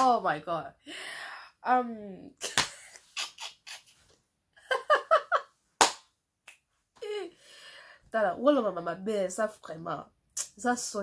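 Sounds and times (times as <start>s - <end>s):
sharp snap or clap: 2.4s - 3.0s, 5.8s - 6.6s
woman laughing: 2.4s - 5.5s.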